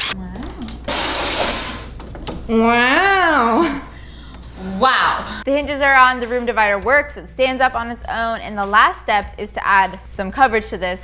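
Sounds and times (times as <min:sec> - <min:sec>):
cordless drill whirring: 0:00.9 - 0:01.9.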